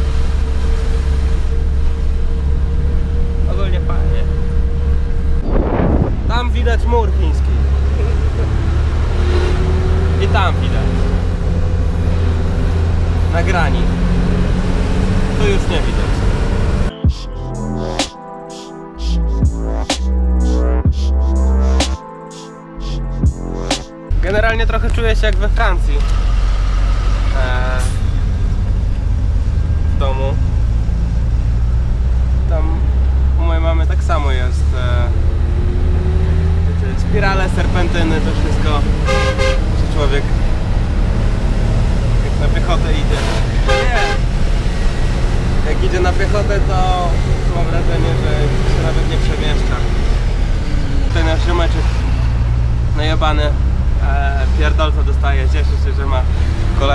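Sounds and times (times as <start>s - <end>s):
tyres on road: 0.0s - 16.9s, 23.8s - 56.9s
vehicle engine drone: 0.0s - 56.9s
bus horn toot: 38.9s - 39.9s, 43.1s - 44.5s.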